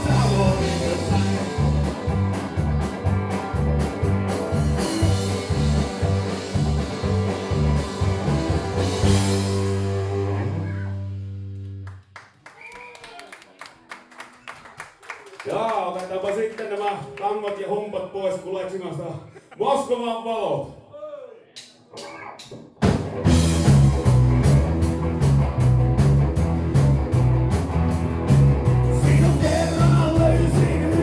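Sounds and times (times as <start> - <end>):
rock band playing: 0.0 - 12.1, 22.0 - 31.0
audience clapping: 11.5 - 17.9.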